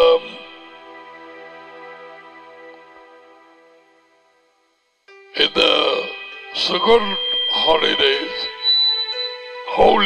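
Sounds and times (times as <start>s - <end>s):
man speaking into a microphone: 0.0s - 0.4s, 5.4s - 8.5s, 9.7s - 10.0s
faint steady tone: 0.0s - 10.0s.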